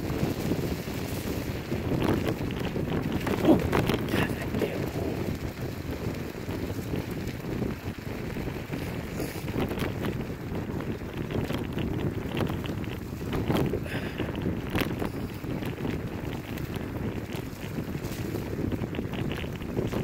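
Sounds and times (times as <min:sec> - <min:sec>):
clicks and crunches from wheels: 0:00.0 - 0:20.0
tyres rolling on wet dirt: 0:00.0 - 0:20.0
wind rushing over microphone: 0:00.0 - 0:20.0.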